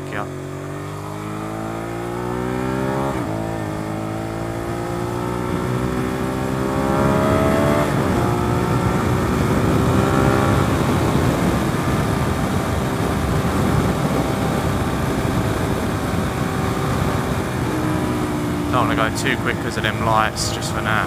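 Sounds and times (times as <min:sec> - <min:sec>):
motorcycle engine running: 0:00.0 - 0:21.0
wind noise on microphone: 0:07.2 - 0:18.8.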